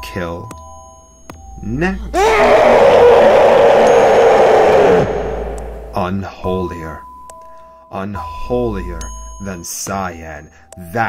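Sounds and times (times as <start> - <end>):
distorted drone: 3.8 - 6.2.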